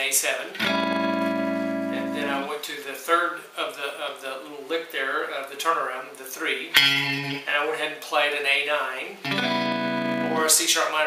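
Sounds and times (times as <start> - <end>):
electric guitar chord ringing: 0.6 - 2.5, 6.8 - 7.4, 9.2 - 10.5.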